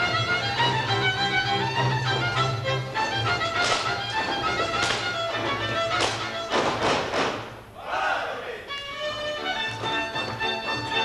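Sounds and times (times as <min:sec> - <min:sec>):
folk dance music with fiddle: 0:00.0 - 0:07.2, 0:08.6 - 0:11.0
boots stamping on stage: 0:03.3 - 0:07.5.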